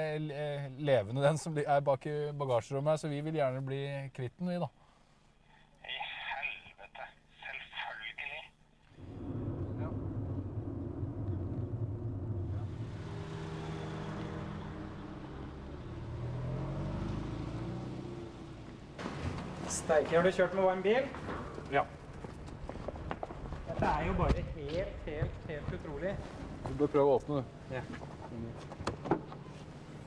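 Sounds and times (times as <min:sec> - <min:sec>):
voice over phone line: 0:05.9 - 0:08.6
road noise hiss: 0:08.9 - 0:24.1
car engine rumble: 0:08.9 - 0:30.0.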